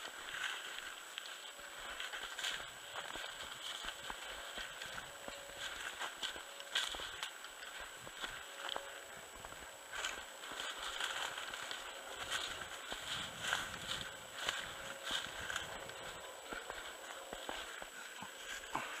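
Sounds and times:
dry stalks crackling and snapping: 0.0s - 18.8s
footsteps crunching through snow: 0.0s - 19.0s.

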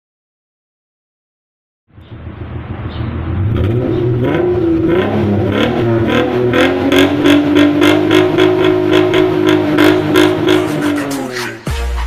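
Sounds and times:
car engine idling: 1.9s - 11.4s
music with deep bass: 1.9s - 12.0s
music with ticking beat: 9.0s - 12.0s.

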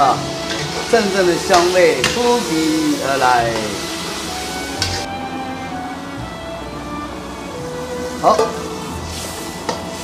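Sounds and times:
chicken sizzling in a wok: 0.0s - 5.1s, 7.6s - 10.0s
background music: 0.0s - 10.0s.

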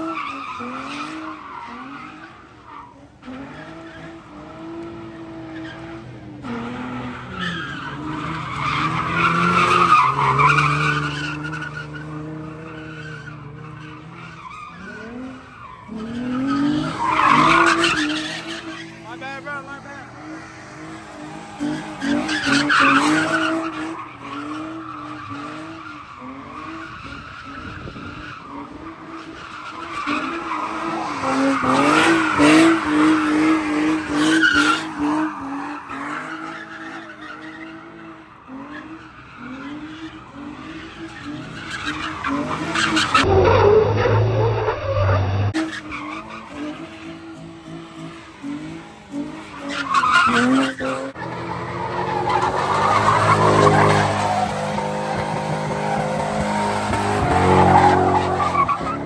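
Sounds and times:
car engine at high revs: 0.0s - 59.0s
tires squealing: 0.0s - 59.0s.

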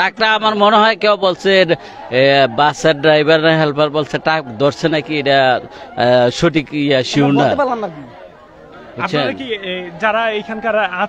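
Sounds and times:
man talking into a microphone: 0.0s - 8.1s, 9.0s - 11.0s
crowd chatter: 0.0s - 11.0s.

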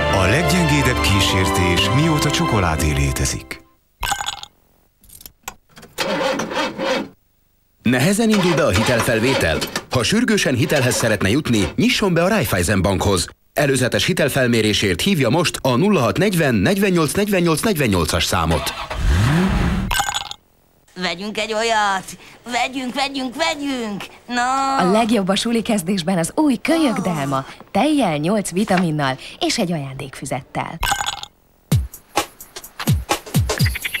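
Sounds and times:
car engine cranking: 5.9s - 7.0s, 18.6s - 19.9s.

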